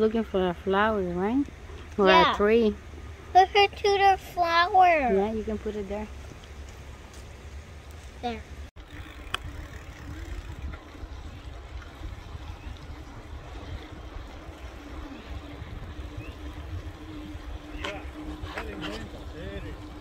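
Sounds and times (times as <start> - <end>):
wind rumble on microphone: 8.8 - 20.0.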